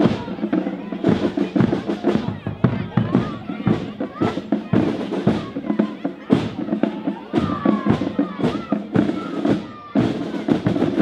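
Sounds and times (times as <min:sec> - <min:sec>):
crowd voices: 0:00.0 - 0:11.0
marching band playing: 0:00.0 - 0:11.0
sharp drum strikes: 0:00.0 - 0:11.0.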